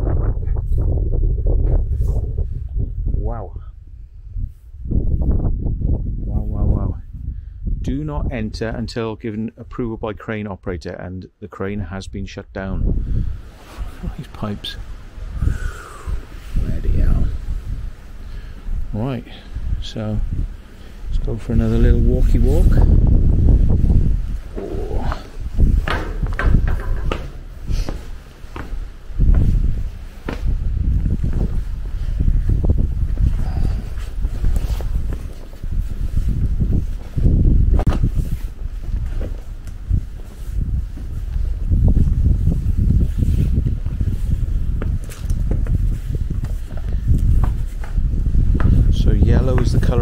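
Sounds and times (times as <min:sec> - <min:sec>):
wind buffeting microphone: 0:00.0 - 0:10.0, 0:12.1 - 0:50.0
footsteps on metal decking: 0:22.8 - 0:49.9.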